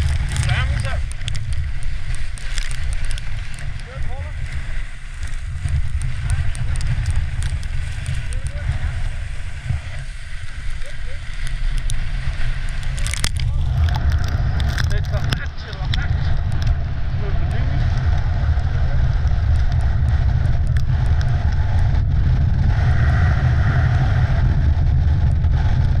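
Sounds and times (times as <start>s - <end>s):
sled runners hissing over snow: 0.0s - 14.6s
sled knocking and rattling: 0.0s - 22.6s
wind buffeting microphone: 0.0s - 26.0s.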